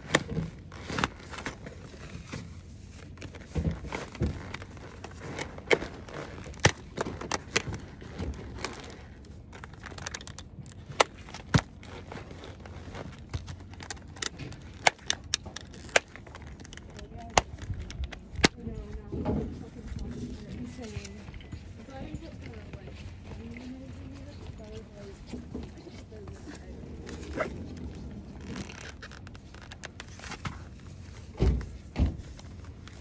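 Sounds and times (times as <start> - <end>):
cloth rustling: 0.0 - 18.6, 19.6 - 33.0.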